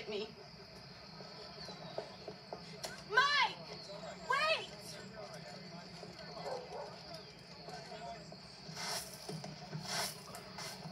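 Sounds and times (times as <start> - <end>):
faint voices: 0.0 - 10.9
street ambience: 0.0 - 10.9
short noisy bursts: 8.6 - 10.9.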